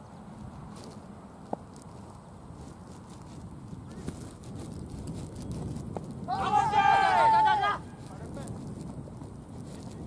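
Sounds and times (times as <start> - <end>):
players shouting: 6.3 - 7.9.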